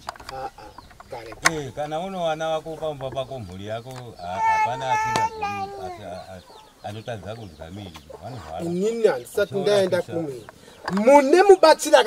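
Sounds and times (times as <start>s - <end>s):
man talking in low voice: 0.3s - 12.0s.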